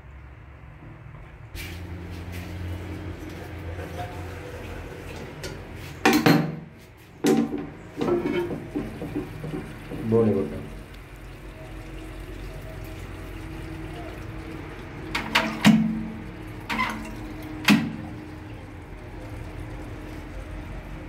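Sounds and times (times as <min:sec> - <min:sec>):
ceramic lid clunking and scraping: 0:07.3 - 0:09.7.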